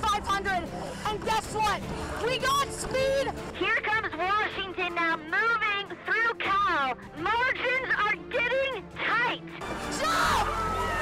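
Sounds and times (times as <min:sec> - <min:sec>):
woman shouting excitedly: 0:05.3 - 0:11.0.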